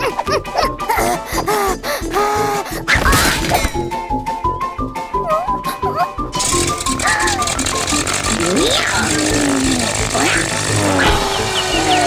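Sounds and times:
cartoon music: 5.1 - 12.0
squeaky character voices: 5.2 - 6.2, 7.0 - 7.6, 8.3 - 12.0
steady rattling noise: 6.3 - 12.0.

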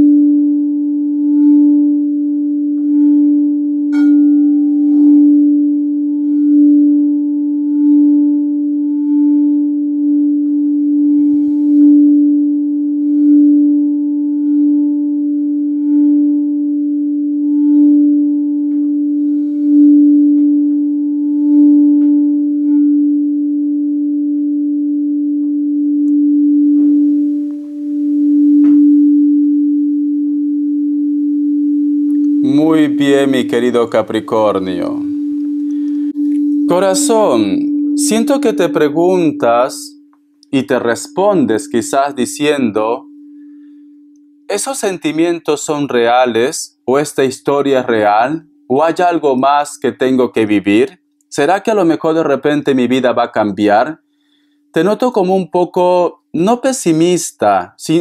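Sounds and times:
singing bowl tone: 0.0 - 51.2.

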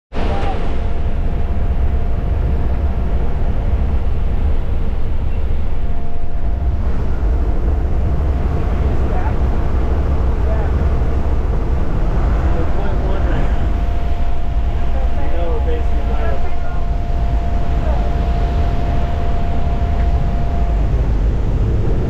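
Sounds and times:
plane engine and propeller drone: 0.1 - 22.0
rushing air: 0.1 - 22.0.

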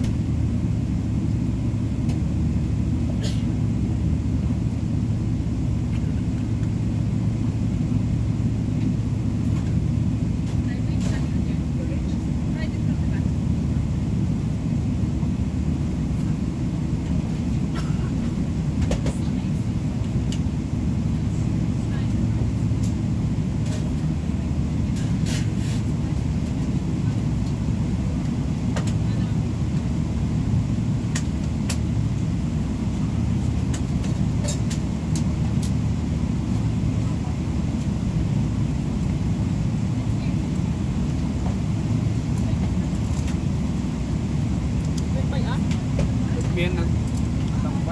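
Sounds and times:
airliner cabin rumble: 0.0 - 47.9.

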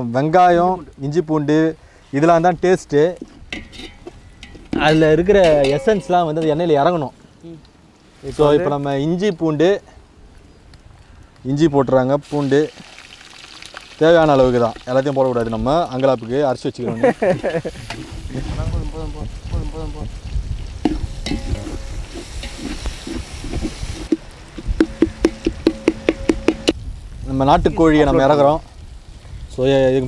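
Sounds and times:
ladle scraping against pot: 3.2 - 6.1, 20.9 - 26.8
people talking: 4.8 - 7.6, 8.2 - 9.8, 14.0 - 20.2, 27.3 - 28.6, 29.6 - 30.0
food sizzling in hot oil: 12.2 - 29.2.

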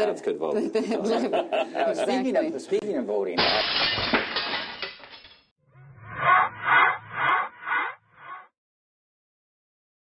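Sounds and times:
evil laughter: 6.2 - 8.5.

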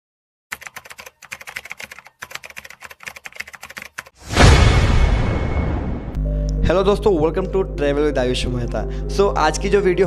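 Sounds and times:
rapid typing on keys: 0.5 - 4.2.

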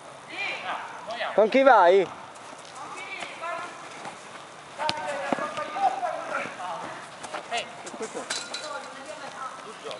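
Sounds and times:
players calling out: 2.8 - 8.3
ball being kicked: 4.8 - 5.8.

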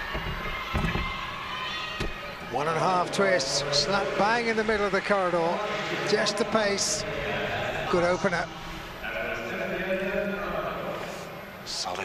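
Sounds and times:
arena crowd murmur: 0.0 - 12.0.

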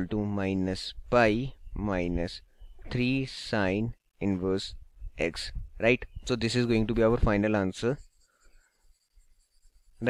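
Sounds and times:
stylus scratching on tablet: 6.4 - 10.0.

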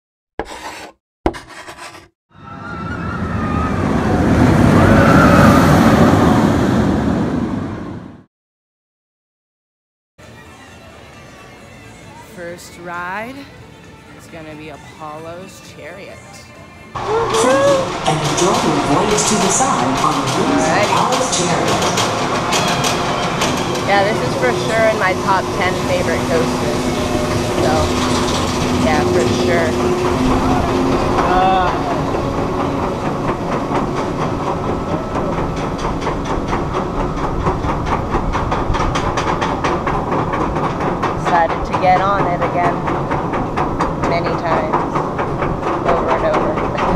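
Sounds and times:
roller coaster train rumble: 2.4 - 8.3, 10.2 - 46.9
coaster clicks: 17.0 - 46.9.

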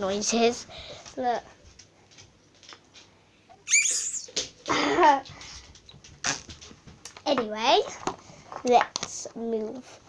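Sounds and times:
buzzy fart noise from putty: 3.7 - 4.4, 6.2 - 6.4
putty squeak: 3.7 - 4.4.

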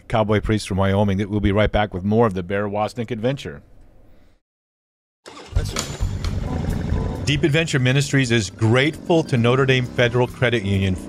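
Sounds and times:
motorcycle engine running: 5.5 - 11.0.

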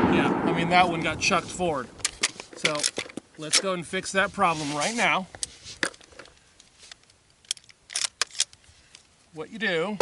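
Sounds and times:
rifle handling clicks and knocks: 1.9 - 3.8, 5.3 - 9.1.

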